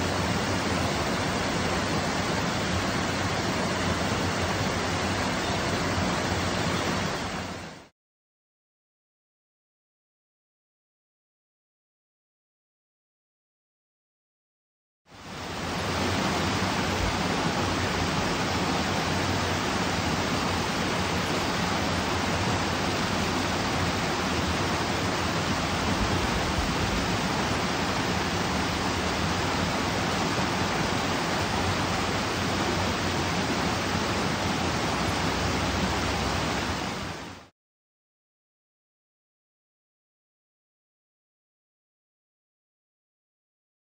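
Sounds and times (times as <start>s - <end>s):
river water pouring over a weir: 0.0s - 7.9s, 15.2s - 37.5s.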